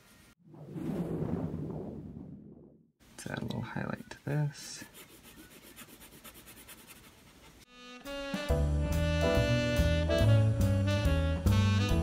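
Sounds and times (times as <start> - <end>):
pencil scratching on paper: 4.8 - 7.7.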